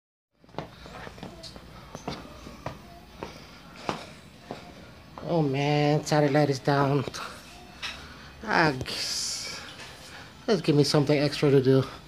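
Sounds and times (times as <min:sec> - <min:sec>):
footsteps: 0:00.4 - 0:10.3.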